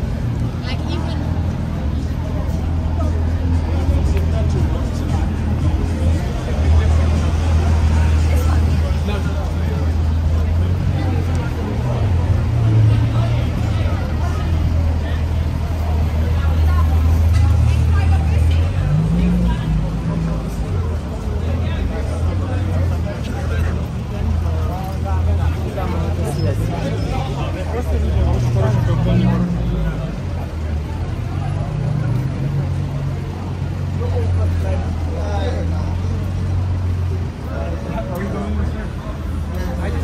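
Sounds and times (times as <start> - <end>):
pedestrians chattering: 0.0 - 40.0
road traffic rumble: 0.0 - 40.0
vehicles idling and moving: 0.0 - 40.0.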